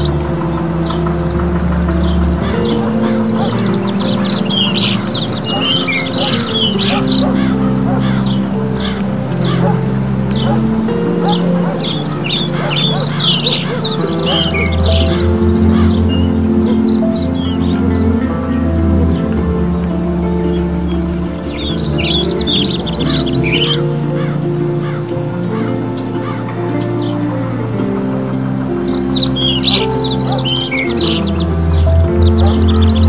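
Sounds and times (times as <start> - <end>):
birds twittering: 0.0 - 33.0
slow low background chords: 0.0 - 33.0.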